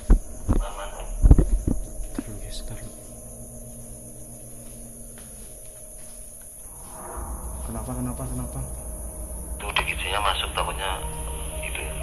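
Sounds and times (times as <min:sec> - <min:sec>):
night insects chirring: 0:00.0 - 0:12.0
two-way radio crackle with voice: 0:00.5 - 0:01.2, 0:11.6 - 0:12.0
low muffled moan: 0:06.9 - 0:09.3.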